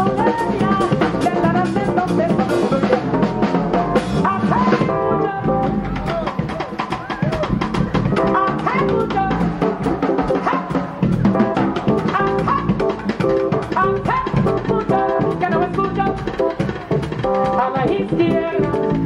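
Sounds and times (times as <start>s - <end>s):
jazz band playing: 0.0s - 19.0s
dense drum strokes: 0.9s - 18.2s.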